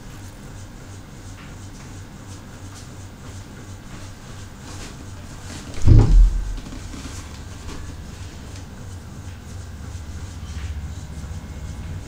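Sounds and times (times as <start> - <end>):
steady low hum: 0.0 - 12.0
dull low thump: 5.8 - 7.0.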